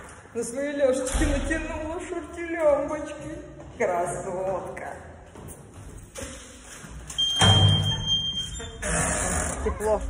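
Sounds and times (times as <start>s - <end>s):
high electronic beep: 7.2s - 8.8s.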